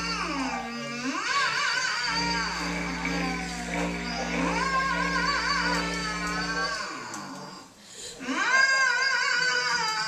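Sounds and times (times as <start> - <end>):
clarinet: 0.0 - 9.9
cello held low note: 2.1 - 7.1
voice singing tones: 2.2 - 7.2.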